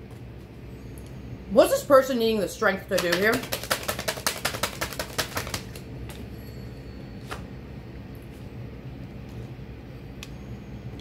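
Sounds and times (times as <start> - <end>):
cards being shuffled: 2.9 - 5.8.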